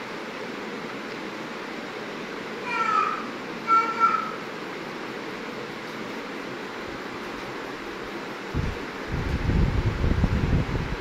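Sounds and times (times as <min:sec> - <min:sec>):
steady low hiss: 0:00.0 - 0:11.0
low rumble of microphone handling: 0:08.5 - 0:11.0.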